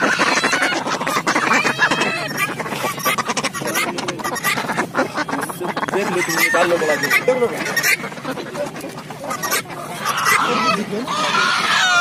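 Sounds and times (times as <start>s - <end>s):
ducks quacking: 0.0s - 12.0s.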